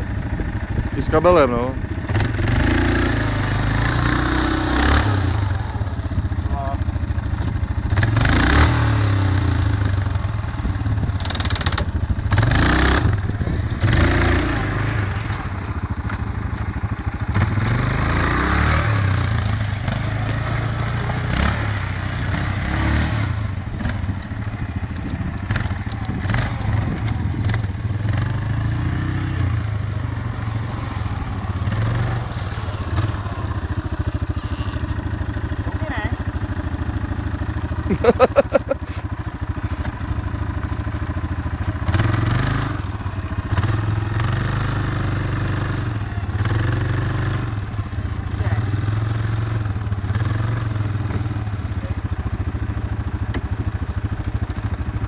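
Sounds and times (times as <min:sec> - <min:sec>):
quad bike engine running: 0:00.0 - 0:55.0.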